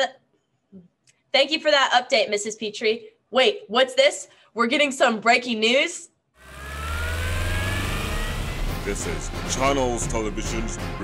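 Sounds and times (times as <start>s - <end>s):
whooshing riser: 6.4s - 10.7s
deep rumble: 6.4s - 10.9s
rising tone: 6.4s - 10.9s.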